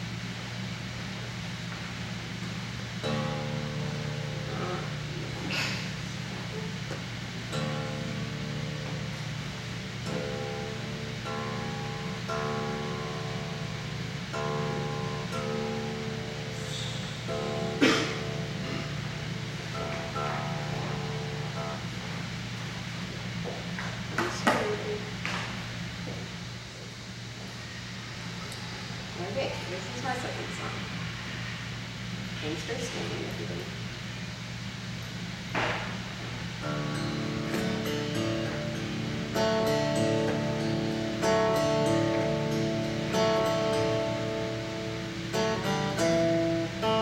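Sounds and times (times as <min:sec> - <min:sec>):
acoustic guitar being tuned: 0:00.0 - 0:47.0
steady low hum: 0:00.0 - 0:47.0
sharp knock: 0:35.5 - 0:35.9.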